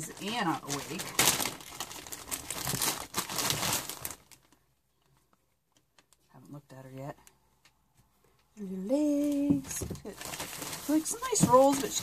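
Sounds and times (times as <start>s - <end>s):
plastic bag crinkling: 0.0s - 6.3s, 9.2s - 12.0s.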